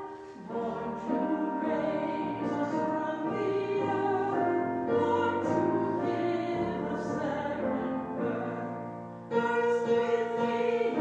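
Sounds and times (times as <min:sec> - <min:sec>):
voices singing a carol: 0:00.0 - 0:11.0.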